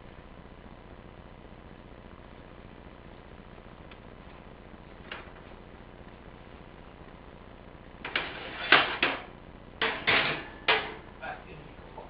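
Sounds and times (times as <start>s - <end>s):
kitchen knocks and clatters: 8.1s - 11.1s.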